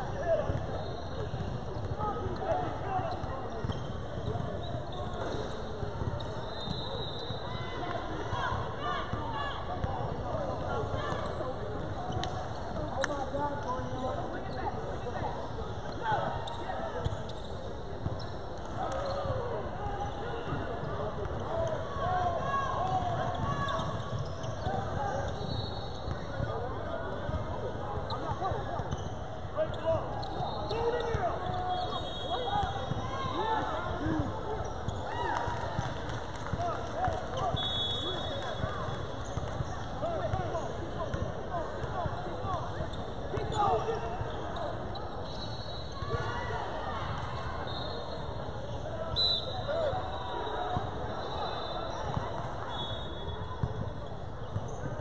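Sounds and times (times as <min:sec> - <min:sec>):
shoe squeaks: 0:00.5 - 0:02.5, 0:03.1 - 0:07.6, 0:23.6 - 0:26.4, 0:42.1 - 0:46.2.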